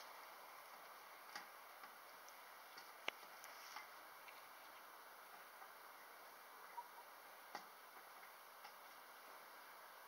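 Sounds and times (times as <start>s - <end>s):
faint steady hiss: 0.0s - 10.0s
small ticks: 6.7s - 9.1s.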